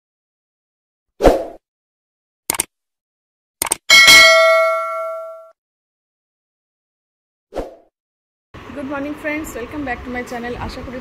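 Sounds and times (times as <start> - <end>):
notification bell ding: 3.9 - 5.5.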